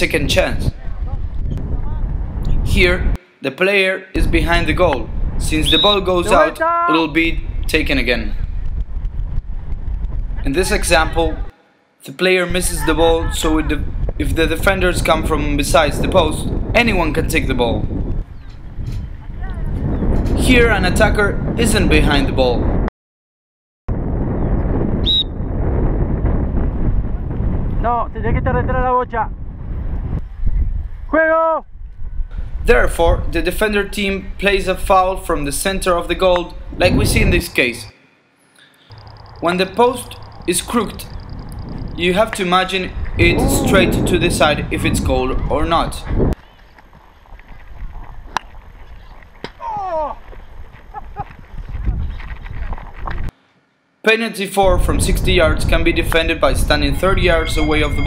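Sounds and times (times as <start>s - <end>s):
wind buffeting microphone: 0.0s - 3.2s, 4.2s - 11.5s, 12.5s - 22.9s, 23.9s - 37.9s, 38.9s - 53.3s, 54.6s - 58.0s
high-pitched whistle blast: 5.6s - 6.5s, 25.0s - 25.4s, 57.3s - 58.0s
rider shouting: 6.2s - 7.0s, 12.7s - 13.8s, 31.1s - 31.6s, 43.2s - 44.0s
hoofbeats on grass: 46.4s - 53.3s.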